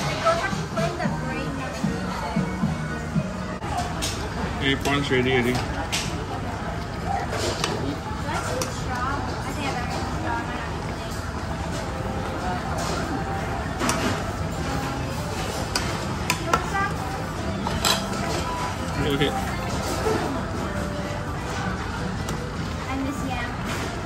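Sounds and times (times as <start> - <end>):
restaurant chatter: 0.0 - 24.0.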